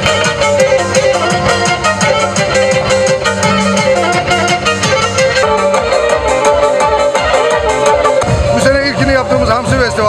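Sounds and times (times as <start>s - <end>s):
bowed string melody: 0.0s - 10.0s
fast folk dance music: 0.0s - 10.0s.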